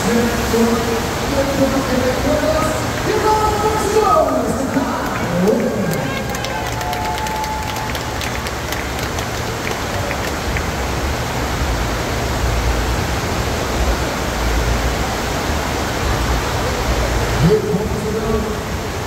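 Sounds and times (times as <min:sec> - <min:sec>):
water rushing: 0:00.0 - 0:19.0.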